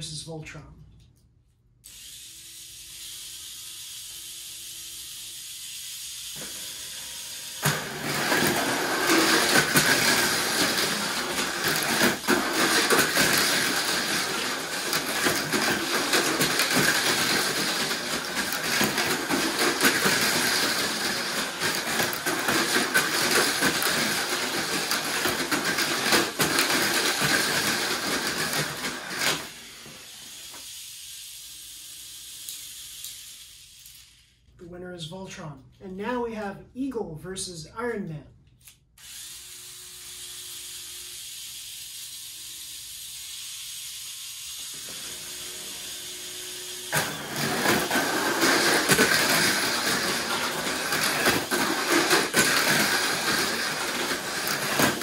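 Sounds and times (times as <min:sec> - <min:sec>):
small electric motors whirring: 0:01.8 - 0:34.5, 0:38.6 - 0:55.0
toy cars rattling against track: 0:07.6 - 0:29.6, 0:32.3 - 0:34.4, 0:46.9 - 0:55.0.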